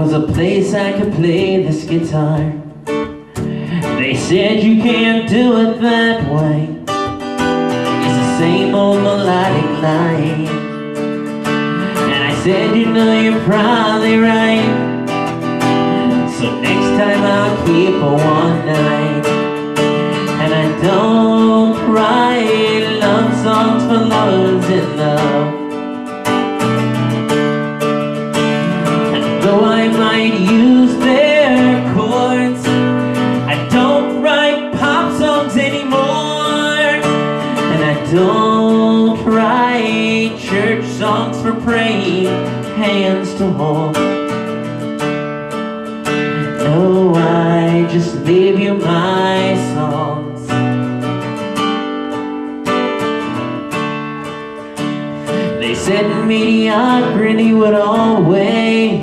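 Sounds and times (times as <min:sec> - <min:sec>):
man singing: 0:00.0 - 0:26.0, 0:28.4 - 0:44.5, 0:46.1 - 0:50.8, 0:55.2 - 0:59.0
acoustic guitar strumming: 0:00.0 - 0:59.0.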